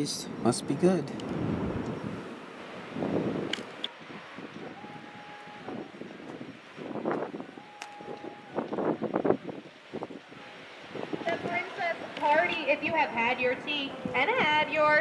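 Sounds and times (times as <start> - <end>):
wind rushing over microphone: 0.4 - 15.0.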